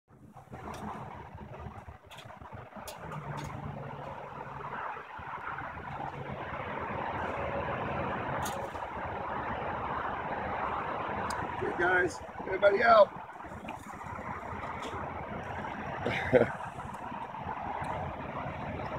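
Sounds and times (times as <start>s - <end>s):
steady rumble and hiss: 0.1s - 18.9s.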